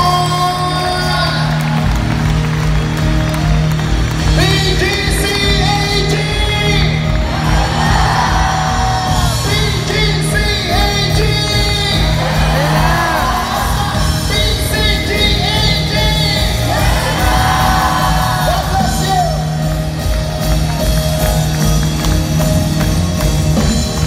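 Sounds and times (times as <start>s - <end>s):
crowd shouting and whooping: 0.0s - 24.0s
people singing: 16.5s - 19.0s.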